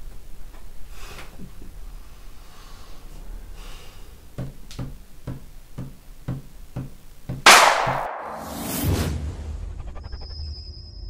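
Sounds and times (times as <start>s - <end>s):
loud whoosh: 7.5s - 10.2s.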